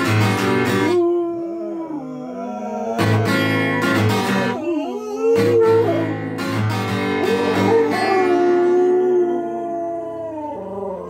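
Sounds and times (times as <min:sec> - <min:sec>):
dog howling: 0:00.6 - 0:06.3, 0:07.2 - 0:11.0.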